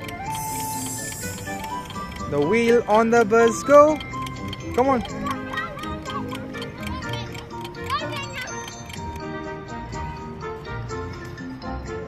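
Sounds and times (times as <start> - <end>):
clock ticking: 0.0 - 9.3
background music: 0.0 - 12.0
child's voice: 5.0 - 8.8.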